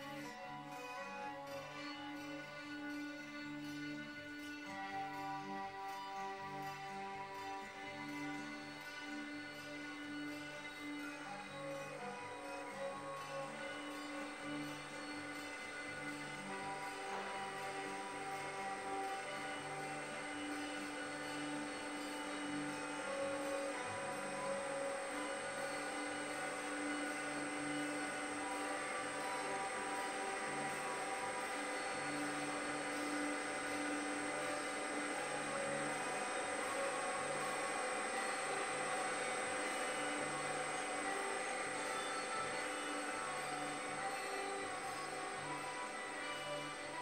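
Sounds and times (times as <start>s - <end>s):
slow sustained music tones: 0.0s - 47.0s.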